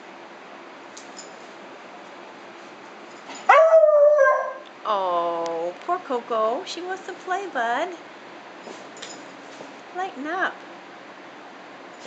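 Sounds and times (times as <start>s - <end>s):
dog howling: 3.5s - 4.7s.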